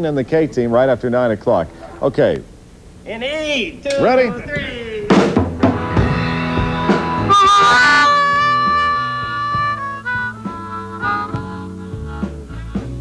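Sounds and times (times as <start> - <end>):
guitar: 3.6 - 13.0
drum kit hits: 4.0 - 13.0
lead wind instrument: 6.8 - 12.9.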